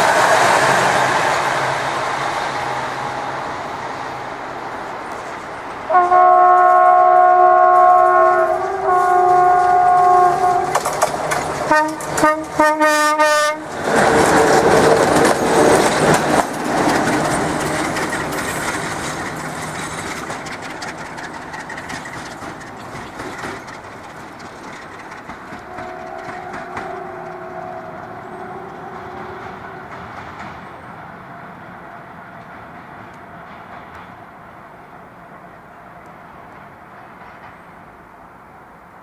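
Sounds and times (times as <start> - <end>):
diesel locomotive engine: 0.0 - 39.0
wheels clicking over rail joints: 4.6 - 34.6, 36.0 - 38.1.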